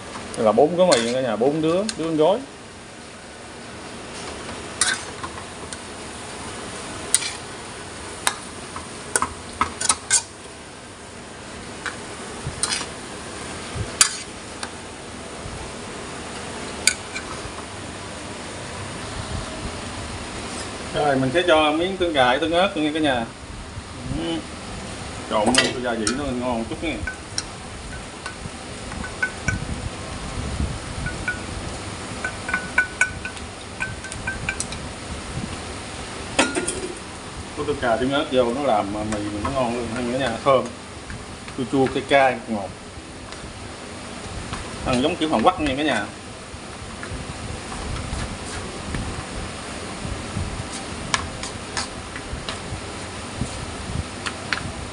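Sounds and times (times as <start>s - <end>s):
steady hiss: 0.0s - 54.9s
metal tongs clinking on wok: 0.9s - 1.2s, 4.8s - 5.1s
noodles rustling while stirred: 4.0s - 10.6s, 11.6s - 18.0s, 36.9s - 54.5s
metal spoon clinking against wok: 29.1s - 29.6s, 32.2s - 34.8s.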